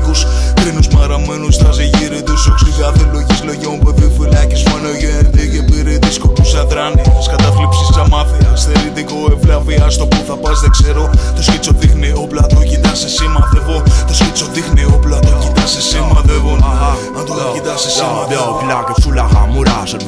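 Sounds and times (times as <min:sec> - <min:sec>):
hip-hop beat with heavy bass: 0:00.0 - 0:20.0
rapped vocals: 0:00.0 - 0:20.0.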